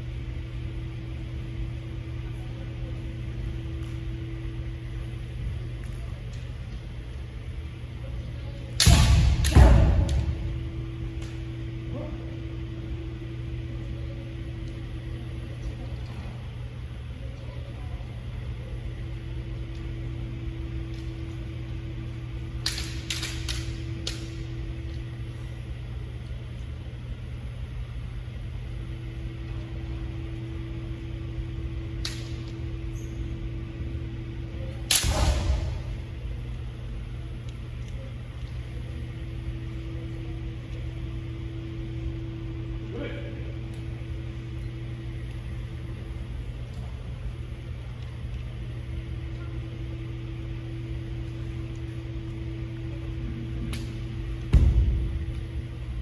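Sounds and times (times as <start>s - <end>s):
steady low hum: 0.0s - 56.0s
bamboo swords clacking: 22.6s - 24.4s.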